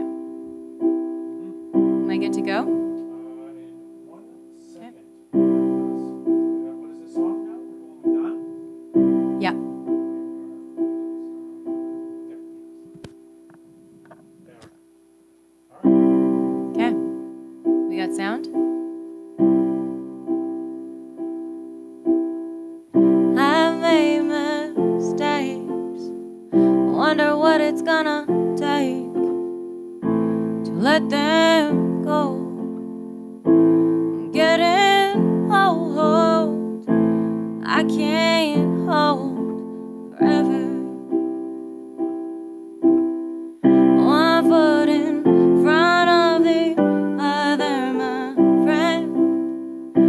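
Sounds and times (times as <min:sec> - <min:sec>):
keyboard piano chords: 0:00.0 - 0:15.0, 0:15.7 - 0:50.0
woman singing: 0:23.2 - 0:29.4, 0:30.6 - 0:32.7, 0:34.3 - 0:36.8, 0:37.6 - 0:41.2, 0:43.8 - 0:49.4.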